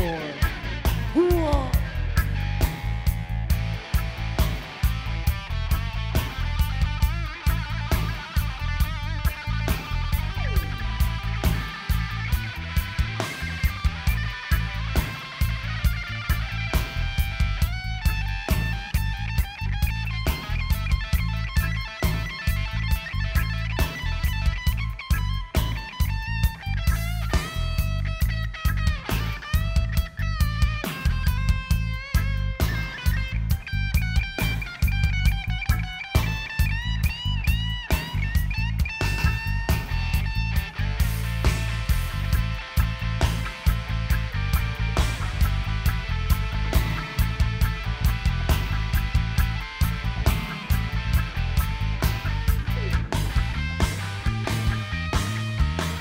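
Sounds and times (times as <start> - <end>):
electric guitar solo: 0.0 - 56.0
reggae band playing: 0.0 - 56.0.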